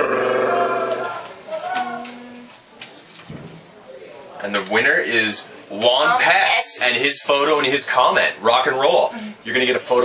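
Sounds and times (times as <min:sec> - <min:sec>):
voice imitating drum roll: 0:00.0 - 0:01.2.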